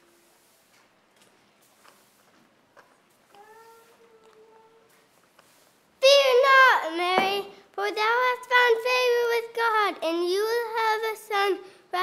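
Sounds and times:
child speaking in sing-song voice: 3.3s - 4.9s, 6.0s - 12.0s.

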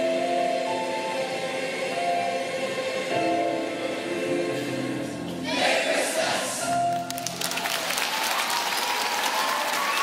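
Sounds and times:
mixed choir singing: 0.0s - 6.8s.

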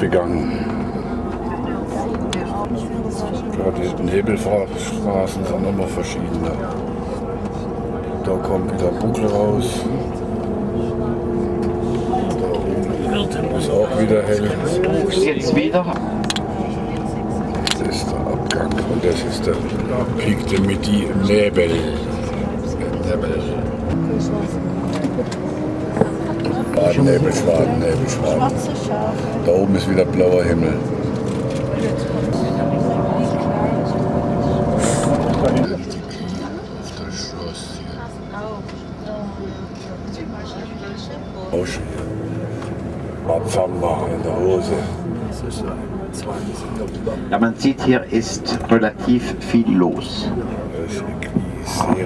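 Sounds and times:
car driving hum: 0.0s - 52.0s
coach engine and road noise: 0.0s - 52.0s
faint voices: 0.0s - 52.0s.

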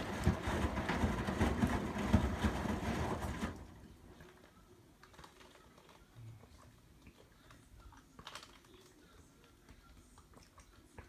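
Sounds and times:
washing machine drum sloshing: 0.0s - 3.9s.

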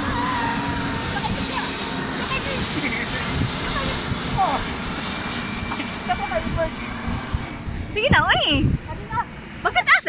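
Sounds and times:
jet airliner engine rumble: 0.0s - 10.0s.

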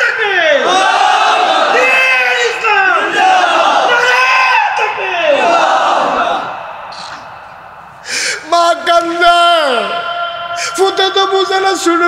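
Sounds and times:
crowd voices: 0.0s - 8.9s.

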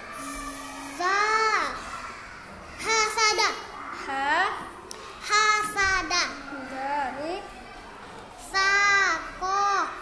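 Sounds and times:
young child's voice: 0.0s - 2.2s.

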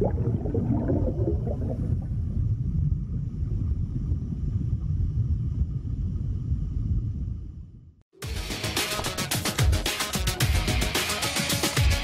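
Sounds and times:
bubbling gurgles: 0.0s - 3.9s
deep underwater rumble: 0.0s - 8.0s.

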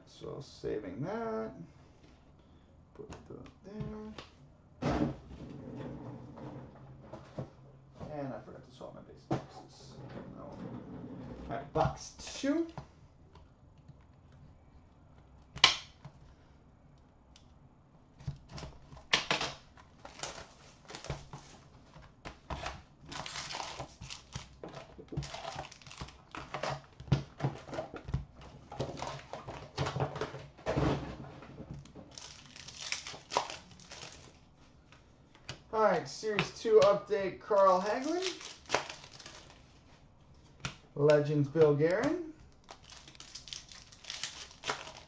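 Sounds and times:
foil packs crinkling and tearing: 20.0s - 21.4s, 23.0s - 26.8s, 32.1s - 34.4s, 37.6s - 39.7s, 41.9s - 45.0s
card pack snapping: 32.1s - 34.4s, 37.9s - 39.6s, 41.8s - 45.0s.

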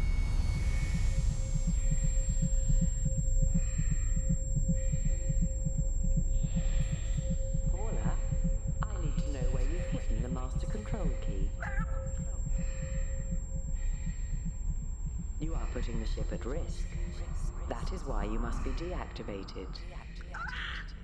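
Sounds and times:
low mechanical hum: 0.0s - 20.4s
rapid low throbbing pulse: 0.0s - 20.4s
wavering voice-like sounds: 8.8s - 12.9s.

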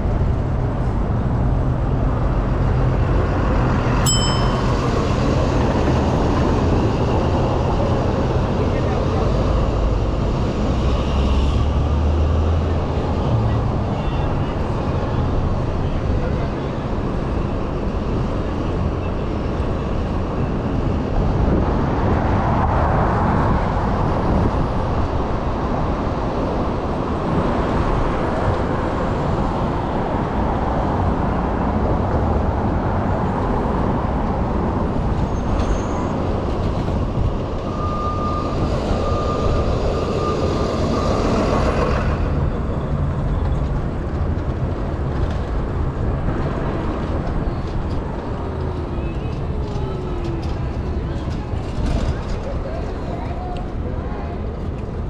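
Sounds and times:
road rumble: 0.0s - 55.0s
street traffic: 0.0s - 55.0s.

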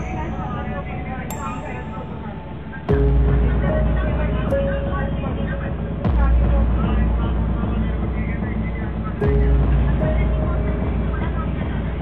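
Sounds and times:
indistinct voices talking: 0.0s - 12.0s
low rumble: 0.0s - 12.0s.

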